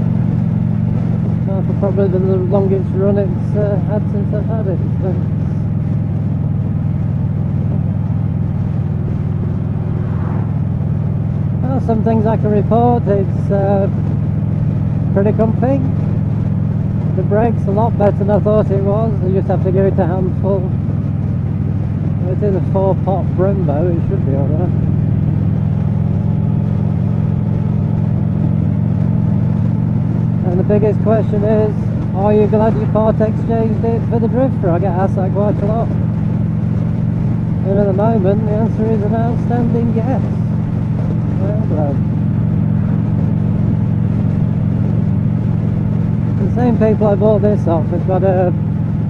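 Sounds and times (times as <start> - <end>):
motorcycle engine running: 0.0 - 49.0
wind and road noise: 0.0 - 49.0.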